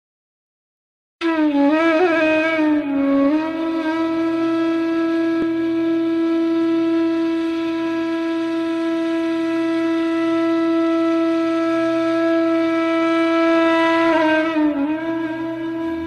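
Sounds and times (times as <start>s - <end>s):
flute holding long note: 1.2s - 16.0s.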